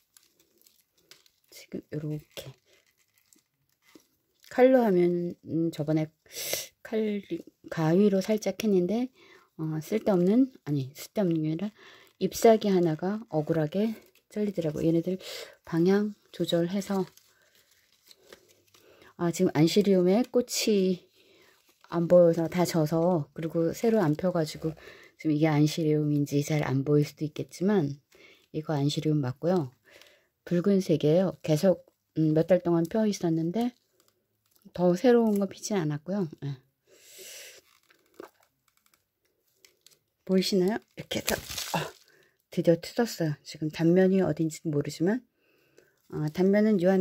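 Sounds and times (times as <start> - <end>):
roots and soil tearing: 0.0 - 4.6, 11.1 - 19.0, 37.6 - 39.0, 39.6 - 42.2
small crackles of stems: 0.0 - 4.6, 9.9 - 20.6, 32.6 - 36.4, 37.6 - 42.2
leaves rustling: 16.4 - 19.0, 41.0 - 42.1.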